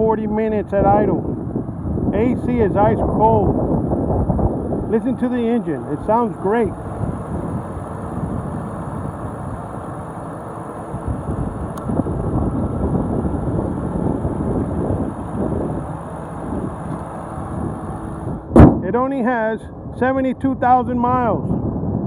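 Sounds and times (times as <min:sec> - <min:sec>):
car engine idling: 0:00.0 - 0:19.5.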